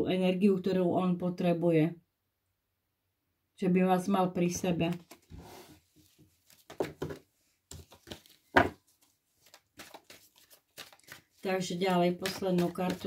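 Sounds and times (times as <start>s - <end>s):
cards rustling and snapping: 6.0s - 13.0s.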